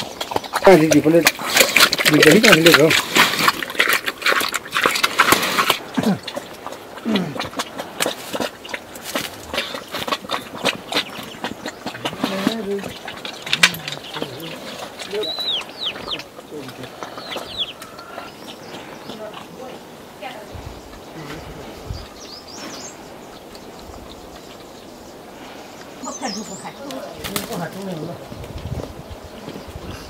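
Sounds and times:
bird chirps: 0:09.7 - 0:27.6
faint voices: 0:11.9 - 0:22.2.

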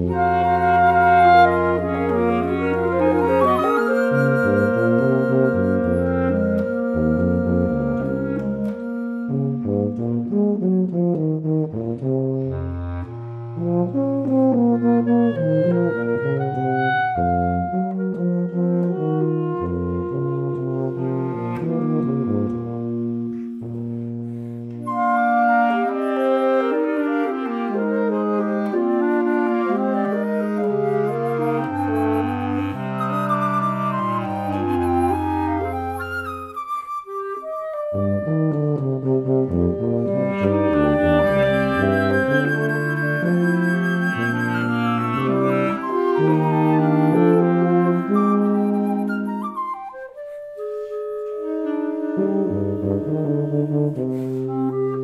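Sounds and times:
low tuba notes: 0:00.0 - 0:36.6, 0:37.2 - 0:49.6, 0:50.6 - 0:55.0
alto saxophone: 0:00.0 - 0:55.0
bass clarinet: 0:00.0 - 0:55.0
clarinet: 0:00.0 - 0:55.0.

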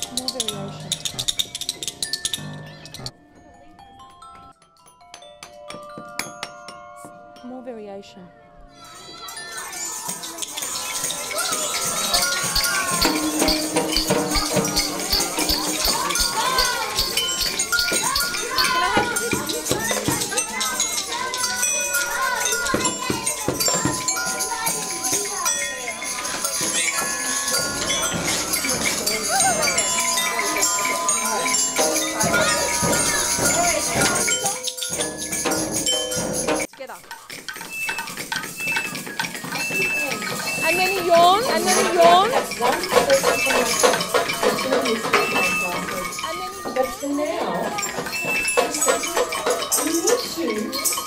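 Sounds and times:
glockenspiel notes: 0:00.0 - 0:51.0
ringing tones: 0:00.0 - 0:51.0
small bells jingling: 0:00.0 - 0:51.0.

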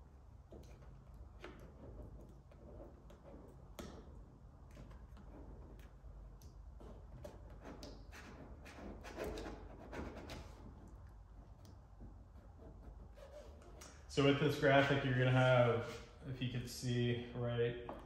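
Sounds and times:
squeegee scraping over film: 0:00.6 - 0:16.1.

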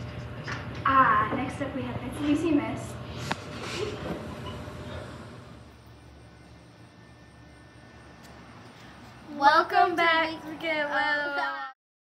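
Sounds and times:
low steady hum: 0:00.0 - 0:11.7.

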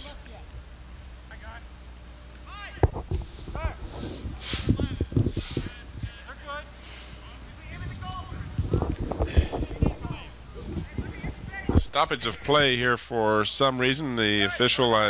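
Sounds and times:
steady low rumble: 0:02.9 - 0:06.5, 0:07.2 - 0:13.6
distant players shouting: 0:05.6 - 0:13.0.

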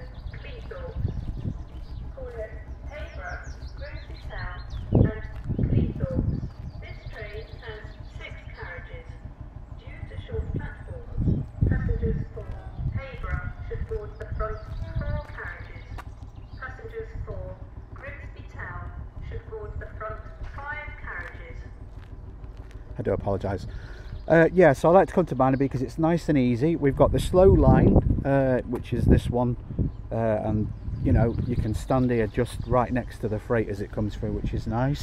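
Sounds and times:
wind buffeting microphone: 0:00.0 - 0:35.0
person talking: 0:02.2 - 0:09.1, 0:09.8 - 0:15.9, 0:24.3 - 0:35.0.

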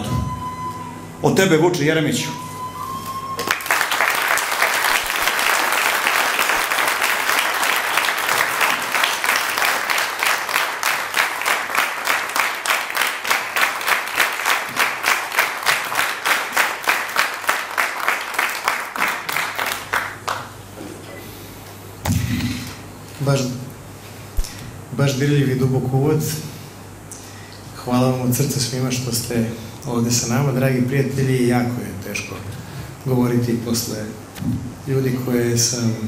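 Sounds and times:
audience applauding: 0:03.4 - 0:20.6
rhythmic clapping in unison: 0:03.4 - 0:20.6.

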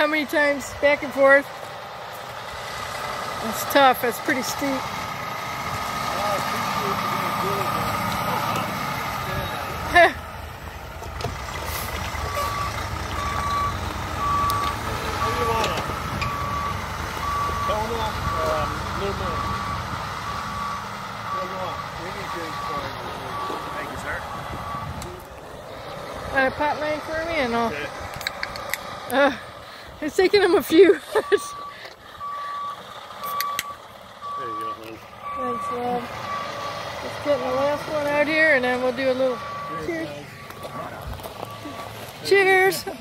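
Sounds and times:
truck diesel engine running: 0:00.0 - 0:43.0
backup alarm beeps: 0:12.2 - 0:25.0, 0:31.2 - 0:42.8.

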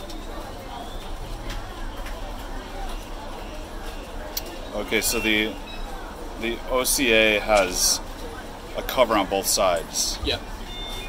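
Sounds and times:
background voices chattering: 0:00.0 - 0:11.0.

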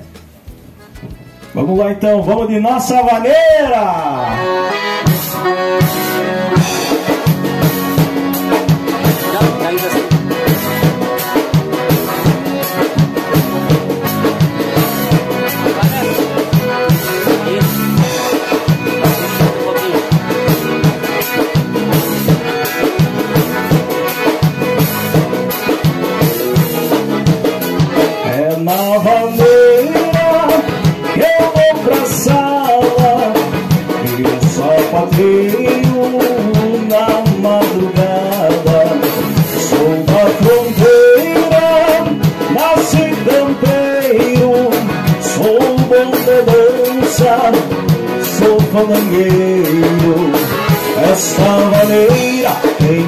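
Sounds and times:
accordions playing: 0:00.0 - 0:53.0
acoustic guitar: 0:00.0 - 0:53.0
drum kit beat: 0:00.0 - 0:53.0.

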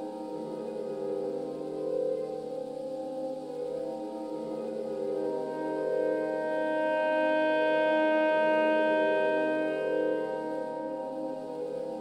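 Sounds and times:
ambient electronic drone: 0:00.0 - 0:12.0
saxophone holding a long note: 0:00.0 - 0:12.0.

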